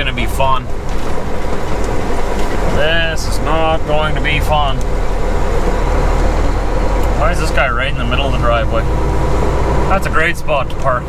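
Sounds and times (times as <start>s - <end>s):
road noise: 0.0s - 11.0s
truck diesel engine rumble: 0.0s - 11.0s.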